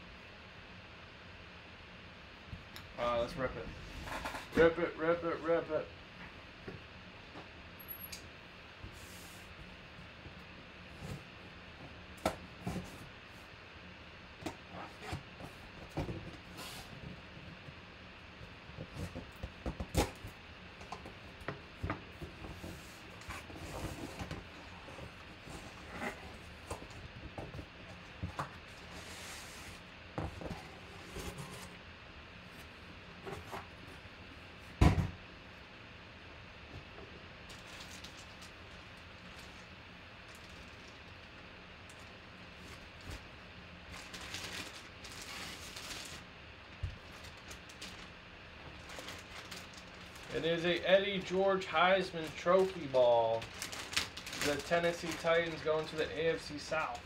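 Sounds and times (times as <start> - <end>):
rustles of cardboard: 21.1 - 31.8, 42.4 - 51.4, 52.2 - 57.0.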